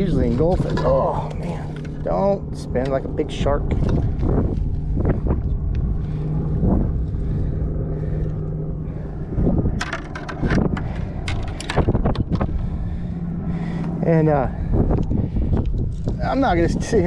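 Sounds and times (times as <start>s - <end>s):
low hum: 0.0s - 17.0s
wind on microphone: 0.0s - 17.0s.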